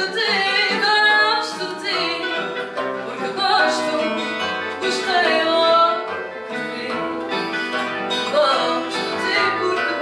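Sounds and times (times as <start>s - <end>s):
guitars playing: 0.0s - 10.0s
woman singing fado: 0.0s - 10.0s.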